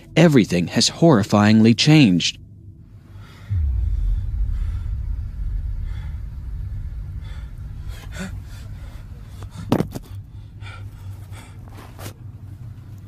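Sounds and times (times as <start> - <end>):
low rumble: 2.4 - 13.0
faint breathy sounds: 2.9 - 12.9.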